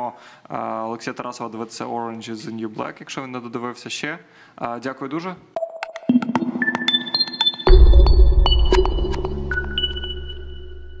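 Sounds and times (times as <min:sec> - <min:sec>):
high pinging tones: 0:05.6 - 0:11.0.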